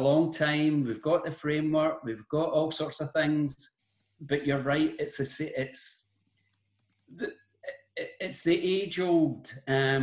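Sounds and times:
man speaking: 0.0 - 6.1, 7.2 - 10.0.

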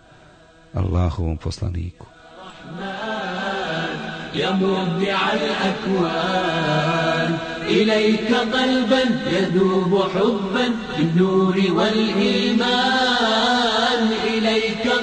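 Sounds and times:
person chanting a religious song: 0.0 - 15.0.

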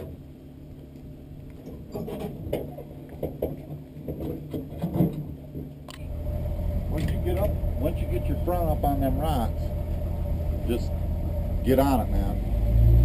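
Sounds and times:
car engine idling: 5.9 - 13.0.

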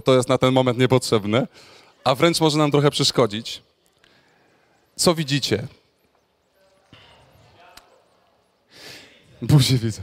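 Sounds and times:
sharp breath into microphone: 8.7 - 9.2.

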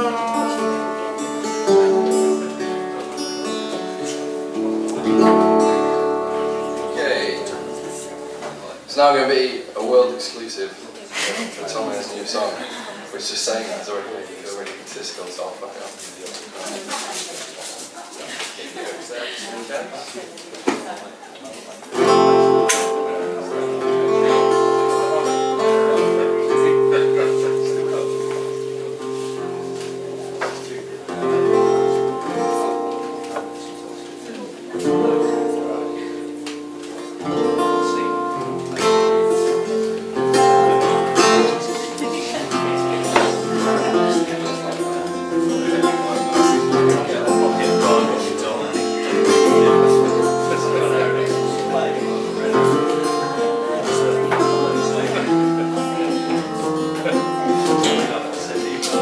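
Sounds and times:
acoustic guitar strumming: 0.0 - 10.8, 21.9 - 59.0.

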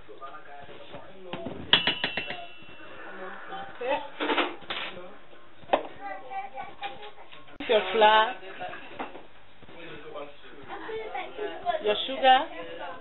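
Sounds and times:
knock on bowl: 1.3 - 2.7
teaspoon tapping metal bowl: 1.7 - 2.7.

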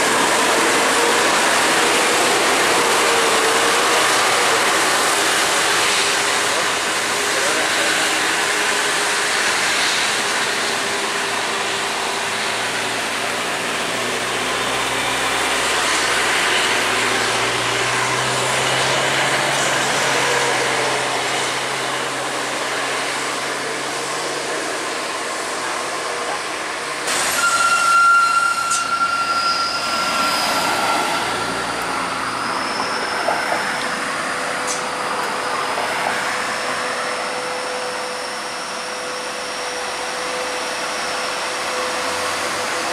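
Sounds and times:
diesel engines droning: 0.0 - 42.9
traffic noise: 0.0 - 42.9.

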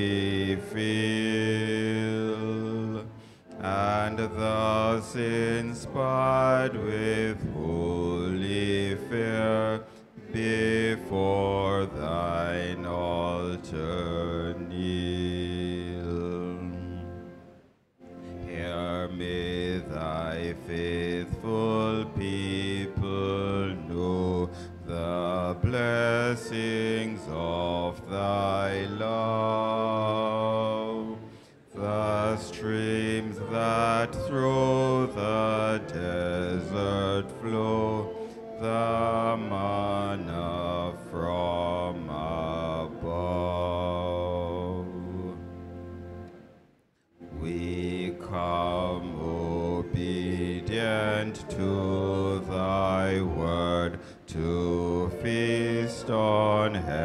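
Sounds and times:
hymn singing: 0.0 - 57.0.

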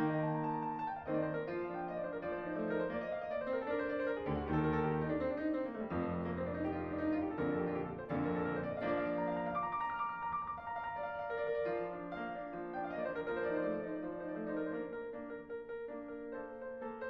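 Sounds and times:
background piano music: 0.0 - 17.0.

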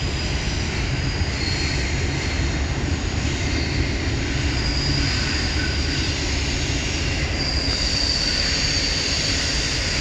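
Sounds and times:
high wheel squeal: 0.0 - 10.0
train wheels rumbling on rail: 0.0 - 10.0.

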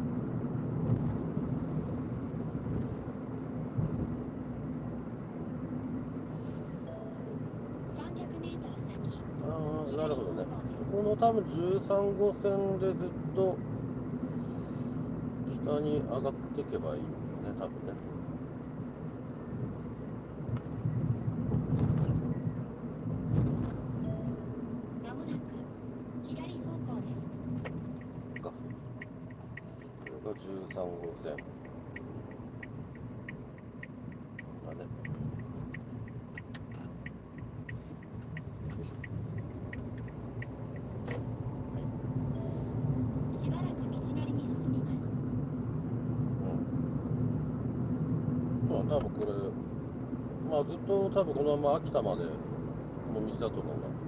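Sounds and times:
car road and engine noise: 0.0 - 54.0
turn signal ticking: 24.0 - 45.1.

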